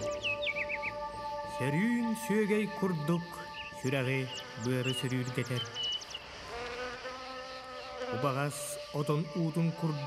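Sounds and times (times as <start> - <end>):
insect buzzing: 0.0 - 10.0.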